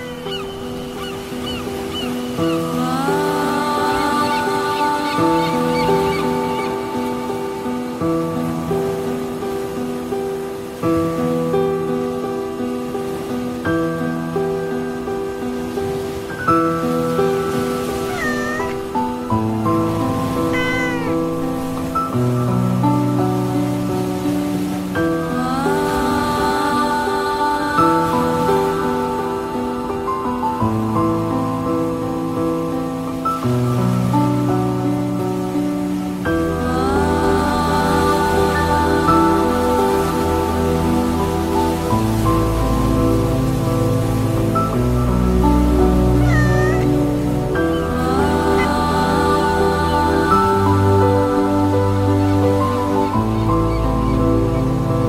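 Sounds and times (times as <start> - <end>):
soft relaxation music: 0.0 - 55.0
cat meowing: 18.0 - 19.0, 20.5 - 21.2, 46.2 - 47.0.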